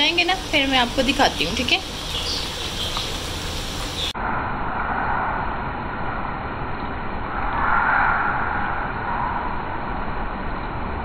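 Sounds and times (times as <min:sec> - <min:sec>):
vegetable slices sizzling in a pan: 0:00.0 - 0:04.1.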